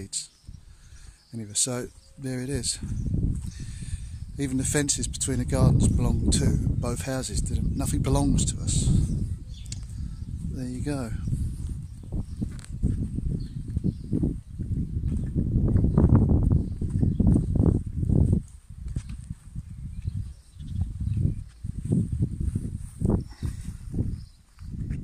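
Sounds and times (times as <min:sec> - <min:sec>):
footsteps on grass and gravel: 0:02.7 - 0:03.7, 0:09.9 - 0:25.0.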